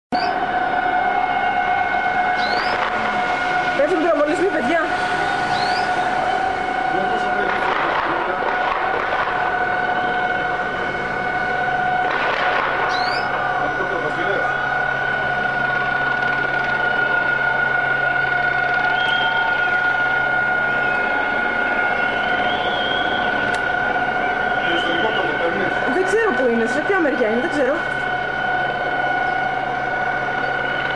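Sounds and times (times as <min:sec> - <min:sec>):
distant voices: 0:00.2 - 0:30.9
high-pitched tone: 0:02.1 - 0:30.9.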